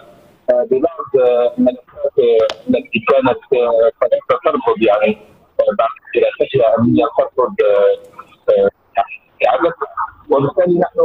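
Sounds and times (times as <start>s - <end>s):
man talking over telephone: 0.0s - 11.0s.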